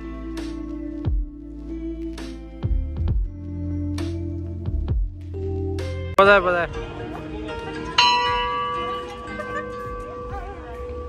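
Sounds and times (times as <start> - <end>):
bell-like chime ringing: 7.6 - 11.0.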